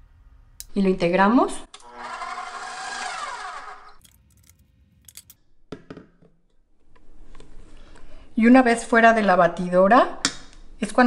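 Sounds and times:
stand mixer motor whine: 1.8s - 3.9s.

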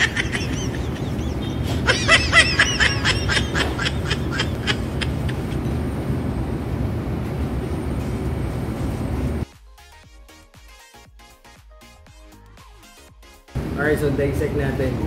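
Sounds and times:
man laughing in short bursts: 0.0s - 5.6s
low room hum: 0.0s - 9.4s.

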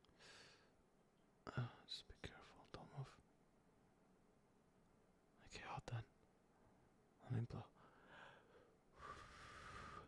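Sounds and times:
man whispering: 1.4s - 3.3s, 5.4s - 6.2s, 7.2s - 7.9s.

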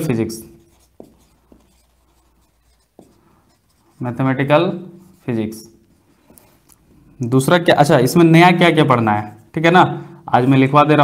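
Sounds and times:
marker writing on whiteboard: 0.0s - 6.9s.

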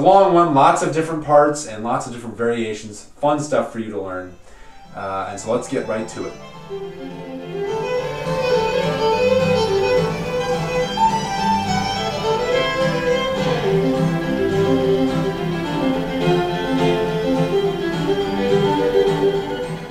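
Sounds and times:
fiddle playing lively tune: 4.5s - 19.9s
lower accompaniment: 4.6s - 19.9s.

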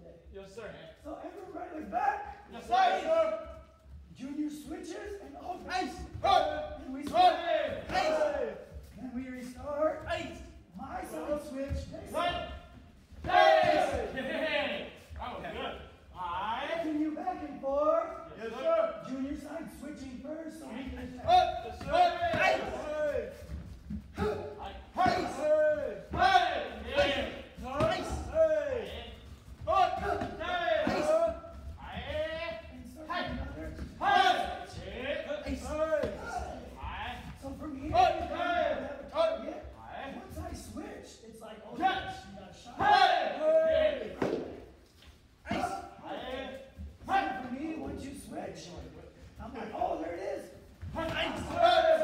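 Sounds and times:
voices in echoing hall: 0.0s - 52.0s.

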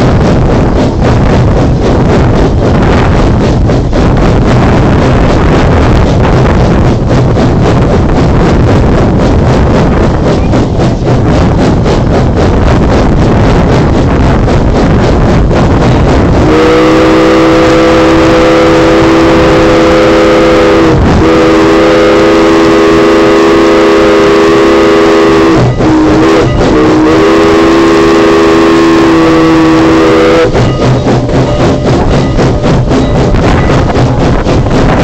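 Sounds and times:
steam locomotive exhaust chuffs: 0.0s - 35.0s
locomotive chime whistle: 16.3s - 34.4s.

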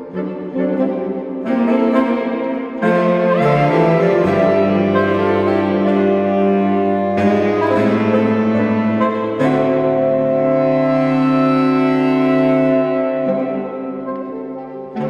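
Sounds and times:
saxophones playing sustained chords: 0.0s - 15.0s.

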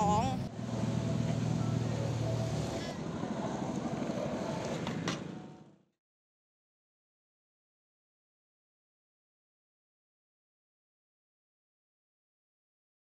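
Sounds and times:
person speaking: 0.0s - 0.5s
wheels rumbling on pavement: 0.0s - 6.0s.

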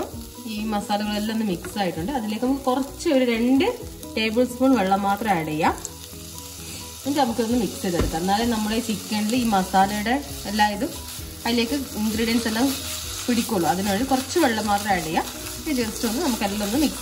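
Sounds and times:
food sizzling in a pan: 0.0s - 17.0s.

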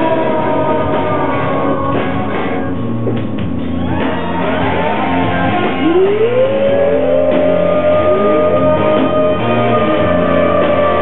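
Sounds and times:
rock band playing live: 0.0s - 11.0s
electric guitar note sliding up: 4.5s - 11.0s.

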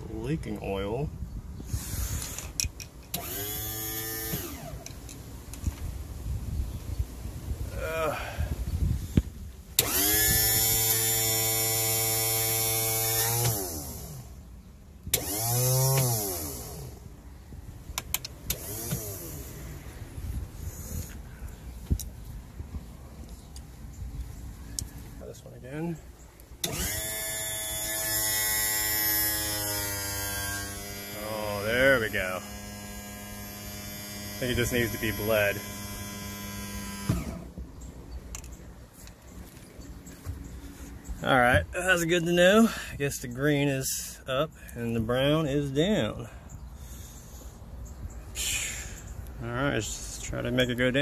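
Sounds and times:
electric pump motor whirring: 1.6s - 5.1s, 9.8s - 14.4s, 15.0s - 17.2s, 17.9s - 21.2s, 26.6s - 37.6s.

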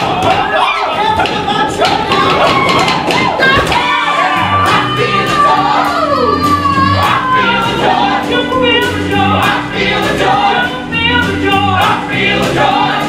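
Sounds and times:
ensemble whooping and shouting: 0.0s - 7.8s
live band playing: 2.4s - 13.0s.

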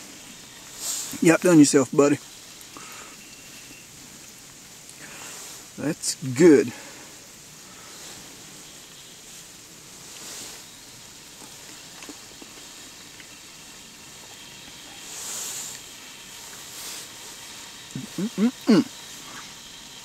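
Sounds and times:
stove burning hiss: 0.0s - 20.0s.

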